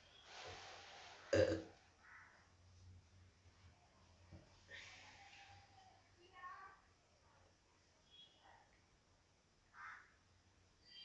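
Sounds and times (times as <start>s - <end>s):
man burping: 1.3s - 1.7s.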